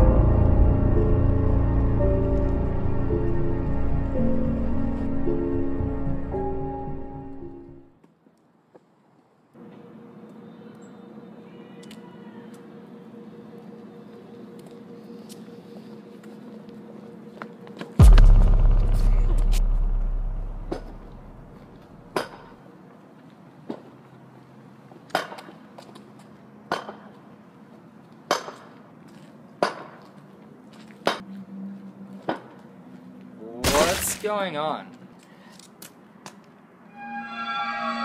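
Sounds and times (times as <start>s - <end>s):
deep rumbling boom: 0.0s - 3.9s, 18.0s - 21.6s
low drone: 0.0s - 7.8s, 18.0s - 22.0s.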